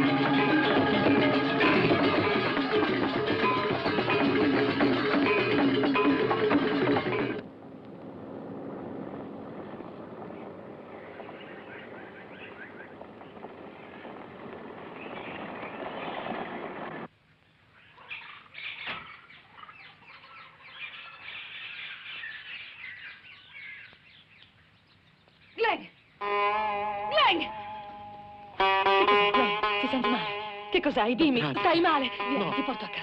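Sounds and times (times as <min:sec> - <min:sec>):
music: 0:00.0 - 0:07.4, 0:26.2 - 0:33.0
bird calls: 0:10.3 - 0:16.8, 0:17.4 - 0:26.3.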